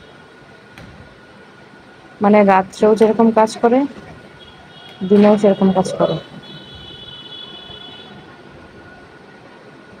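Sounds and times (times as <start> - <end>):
city background noise: 0.0 - 10.0.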